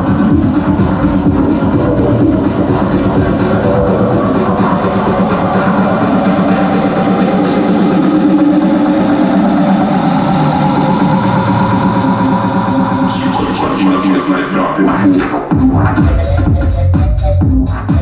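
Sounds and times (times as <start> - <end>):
distorted guitar-like drone: 0.0 - 15.5
electronic dance music: 0.0 - 18.0.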